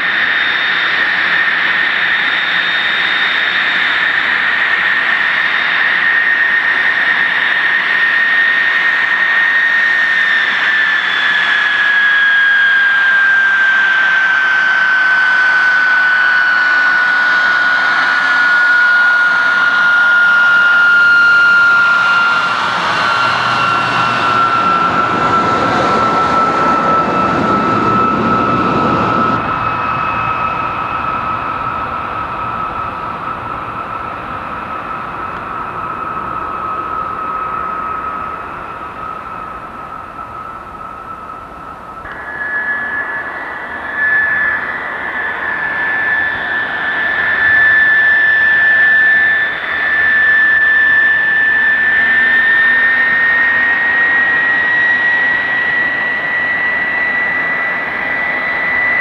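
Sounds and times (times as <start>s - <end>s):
jet engine whine: 0.0s - 59.0s
low rushing noise: 21.2s - 51.8s.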